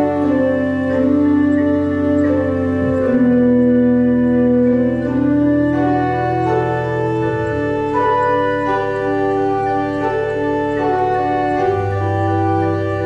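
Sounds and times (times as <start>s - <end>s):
pipe organ playing sustained chords: 0.0s - 13.0s.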